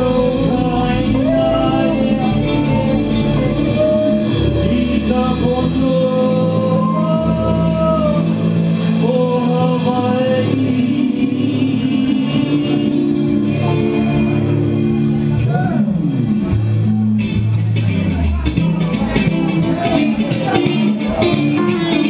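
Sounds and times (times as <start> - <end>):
person singing long notes: 0.0 - 16.1, 20.4 - 22.0
live reggae band playing: 0.0 - 22.0.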